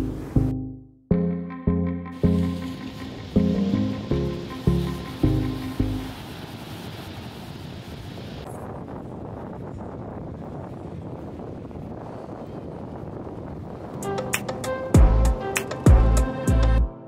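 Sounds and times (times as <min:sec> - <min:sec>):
waves washing onto beach: 0:02.2 - 0:10.1
wind buffeting microphone: 0:02.2 - 0:15.5.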